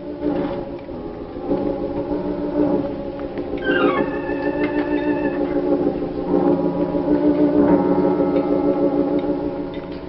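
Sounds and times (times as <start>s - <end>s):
dramatic organ music: 0.0s - 10.0s.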